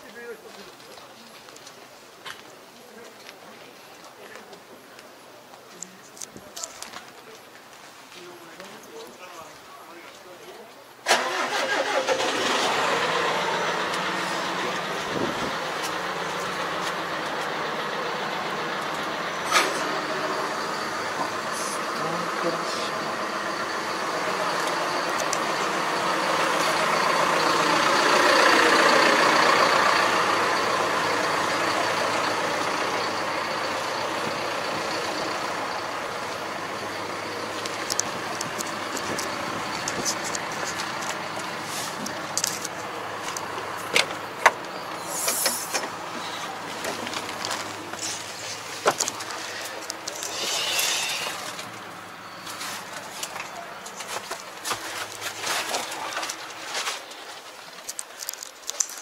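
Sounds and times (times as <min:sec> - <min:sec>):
tractor diesel engine running: 0:11.1 - 0:59.0.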